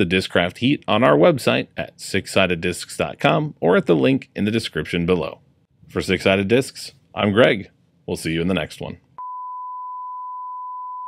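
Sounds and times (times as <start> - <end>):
steady test-tone beep: 9.2 - 11.0.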